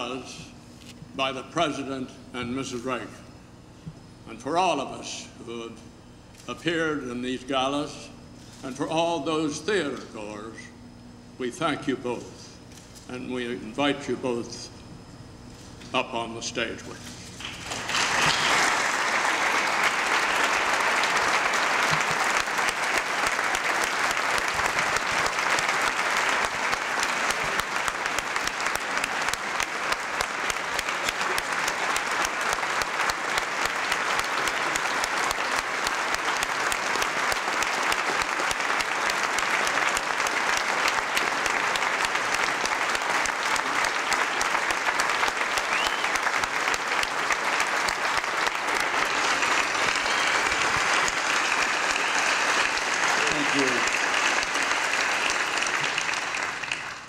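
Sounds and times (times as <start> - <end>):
audience applauding: 17.4 - 57.0.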